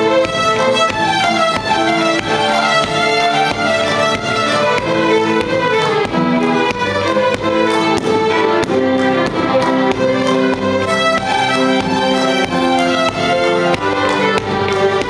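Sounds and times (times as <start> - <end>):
fiddles and cellos playing: 0.0 - 15.0.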